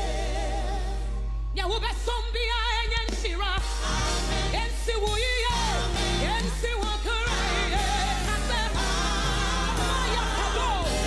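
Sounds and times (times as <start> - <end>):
woman singing gospel lead: 0.0 - 11.0
steady drum beat: 3.0 - 11.0
sustained bass notes: 3.7 - 11.0.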